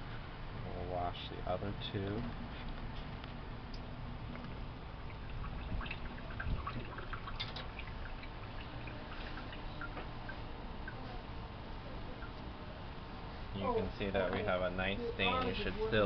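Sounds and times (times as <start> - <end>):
water dripping into metal sink: 3.7 - 11.0.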